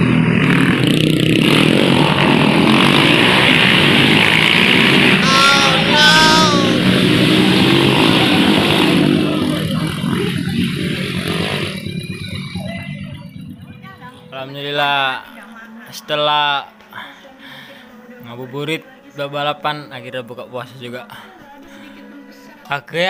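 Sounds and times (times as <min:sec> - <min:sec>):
motorcycle engines running: 0:00.0 - 0:15.4
person shouting: 0:05.2 - 0:07.0.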